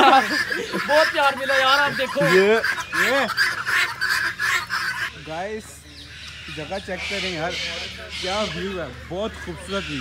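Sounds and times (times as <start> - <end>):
flock of fowl calling: 0.0 - 10.0.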